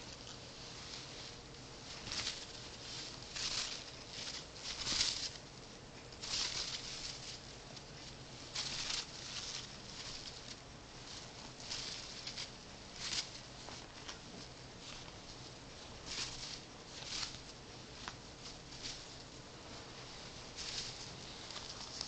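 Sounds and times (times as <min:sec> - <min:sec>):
bird rustling on cloth blanket: 0:00.2 - 0:22.0.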